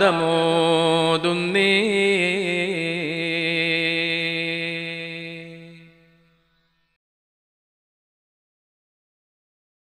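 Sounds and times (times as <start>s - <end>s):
man singing devotional song: 0.0s - 6.2s.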